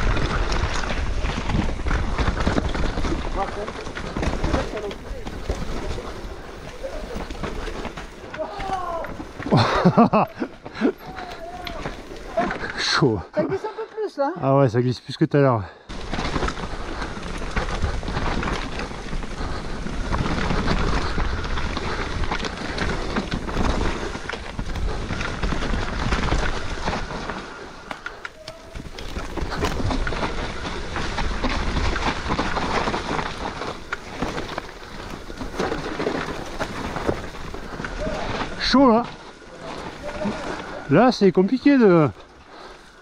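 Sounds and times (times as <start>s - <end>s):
mountain bike rattling on trail: 0.0s - 15.2s, 15.9s - 43.0s.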